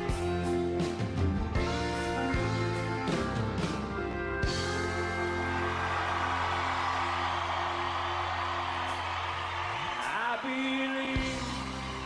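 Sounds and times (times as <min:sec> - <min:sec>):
country band holding a chord: 0:00.0 - 0:12.0
audience cheering and whooping: 0:04.9 - 0:12.0.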